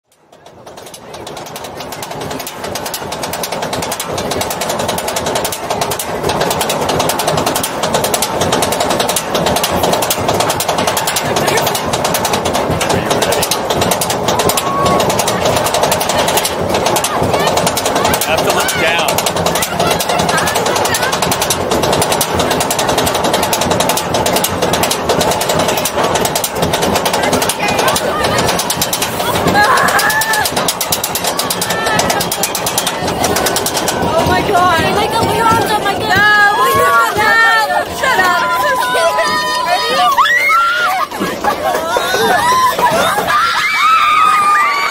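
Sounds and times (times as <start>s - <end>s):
roller coaster lift chain clatter: 0.0s - 44.9s
riders' voices and shouts: 9.8s - 44.9s.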